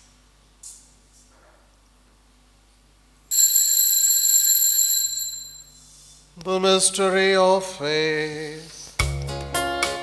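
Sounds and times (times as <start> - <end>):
bright high altar bell ring: 3.3 - 6.0.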